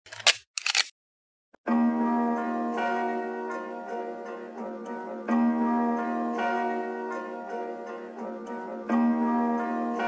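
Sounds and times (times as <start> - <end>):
camera shutter clicks: 0.1 - 0.9.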